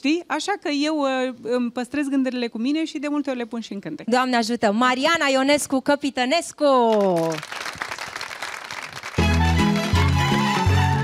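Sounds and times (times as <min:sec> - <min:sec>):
applause: 0:06.9 - 0:11.0
folk band playing: 0:09.2 - 0:11.0.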